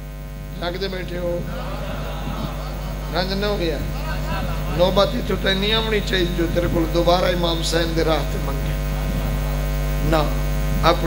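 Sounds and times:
electrical mains hum: 0:00.0 - 0:11.0
man's voice: 0:00.6 - 0:11.0.

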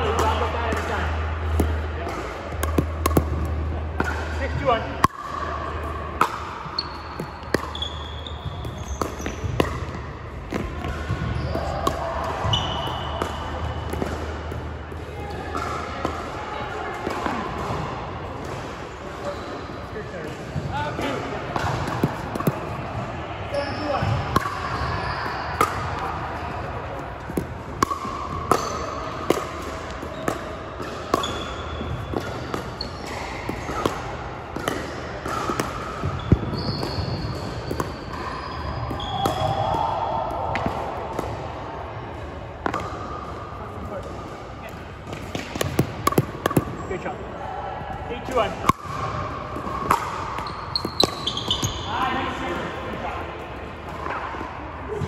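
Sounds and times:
sneakers squeaking on court: 0:06.6 - 0:14.8, 0:23.6 - 0:39.8, 0:45.1 - 0:47.0, 0:48.8 - 0:52.6
paddles hitting plastic balls: 0:45.1 - 0:46.8.

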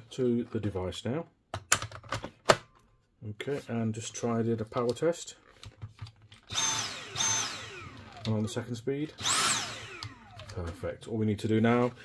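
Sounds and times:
vacuum motor whine: 0:06.5 - 0:08.5, 0:09.2 - 0:10.8.

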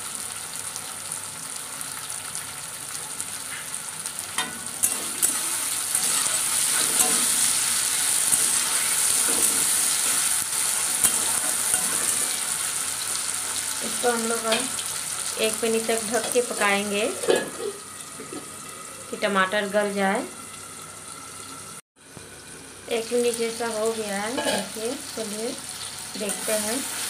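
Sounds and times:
vegetables sizzling in oil: 0:00.0 - 0:27.0.

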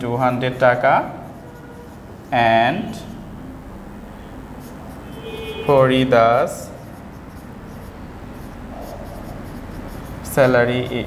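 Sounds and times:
low room hum: 0:00.0 - 0:11.0
marker writing on whiteboard: 0:04.6 - 0:11.0.

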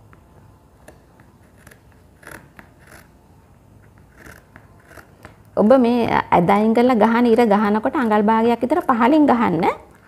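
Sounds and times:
scissors snipping through fabric: 0:01.5 - 0:03.1, 0:04.1 - 0:05.4.

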